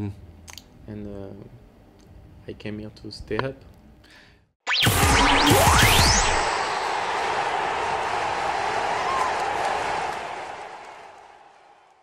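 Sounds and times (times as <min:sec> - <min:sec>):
rising whoosh: 0:04.7 - 0:08.1.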